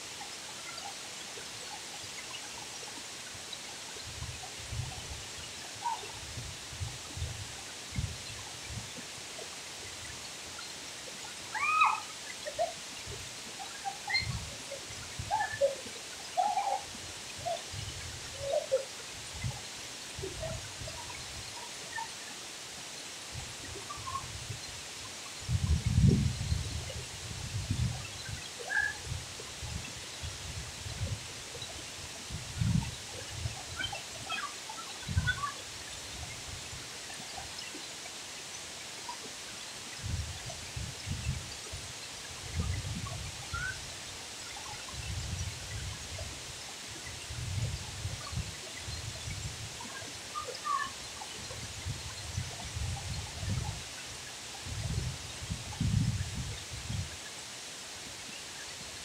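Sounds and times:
faint calls: 0:11.5 - 0:12.8.

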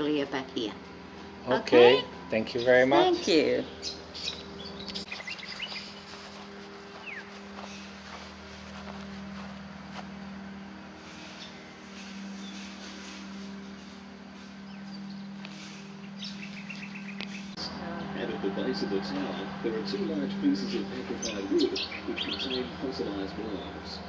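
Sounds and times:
steady low hum: 0:00.0 - 0:24.0
birds chirping: 0:01.3 - 0:24.0.

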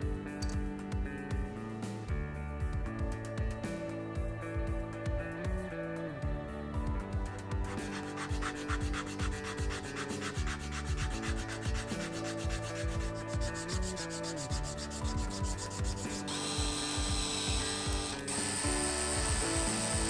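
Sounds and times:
sandpaper rubbing on wood: 0:07.8 - 0:16.6.

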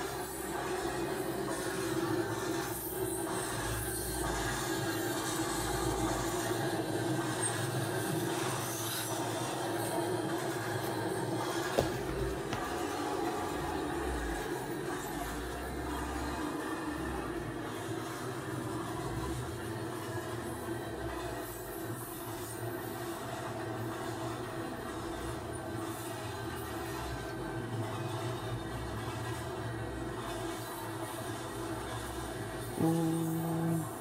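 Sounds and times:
mechanical drone: 0:00.0 - 0:34.0.

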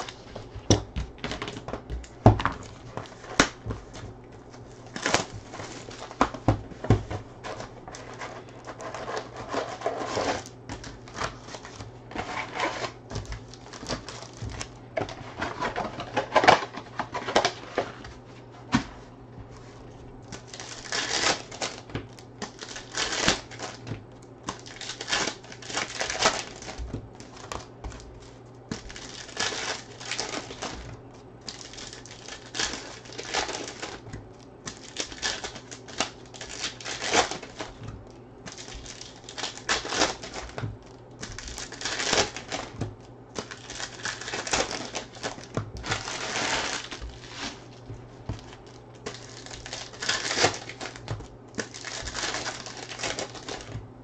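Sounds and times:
card pack wrappers crinkling and tearing: 0:00.0 - 0:18.2, 0:19.7 - 0:54.0
cardboard clicks and taps: 0:00.3 - 0:04.3.

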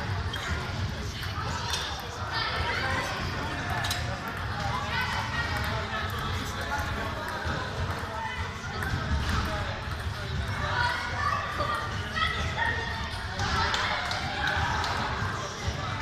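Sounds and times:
chatter of voices: 0:00.0 - 0:16.0
table tennis balls bouncing: 0:08.7 - 0:10.6.

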